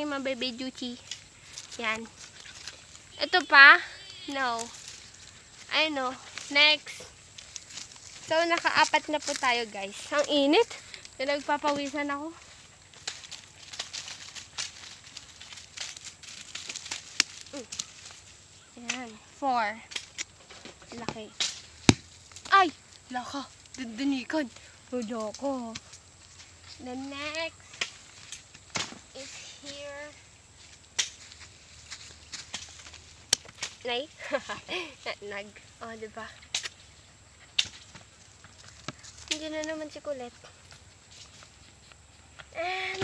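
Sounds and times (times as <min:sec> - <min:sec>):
leaves and straw rustling: 0:00.0 - 0:43.0.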